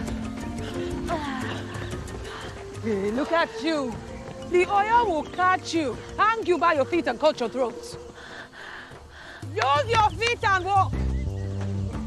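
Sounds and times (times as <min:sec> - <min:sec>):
woman breathing heavily: 0:00.0 - 0:03.2, 0:08.0 - 0:09.6.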